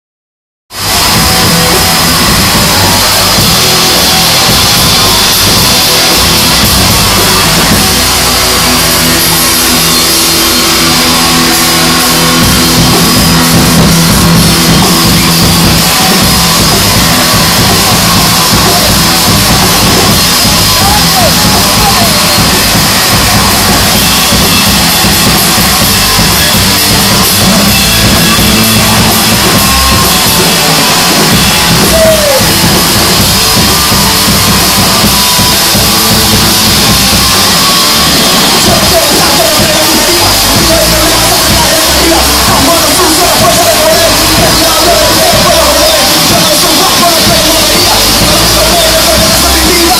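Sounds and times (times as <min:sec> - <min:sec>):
live rock band playing: 0:00.7 - 0:49.9.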